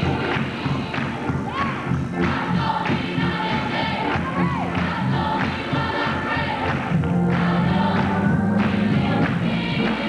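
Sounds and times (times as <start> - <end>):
choir singing: 0.0 - 10.0
instrumental accompaniment: 0.0 - 10.0.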